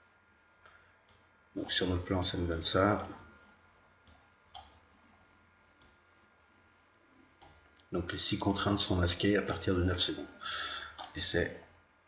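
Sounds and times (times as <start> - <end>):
computer mouse clicking: 4.0 - 4.8, 11.0 - 11.2.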